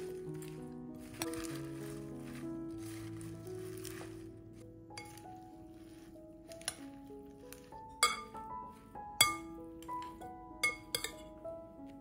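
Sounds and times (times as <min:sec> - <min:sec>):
background music plucked melody: 0:00.0 - 0:12.0
metal servers clinking on glass bowl: 0:00.4 - 0:04.2, 0:05.0 - 0:05.2, 0:07.6 - 0:08.5, 0:09.2 - 0:11.4.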